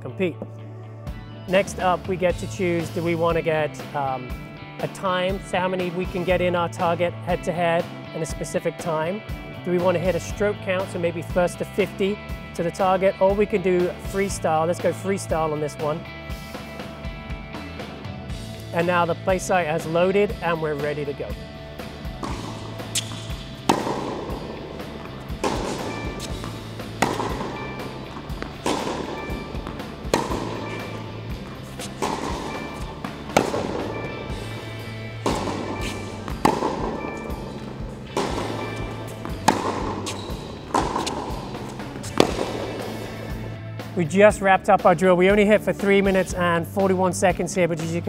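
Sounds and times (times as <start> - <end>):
background music: 0.0 - 48.0
racquet striking tennis ball: 18.5 - 43.6.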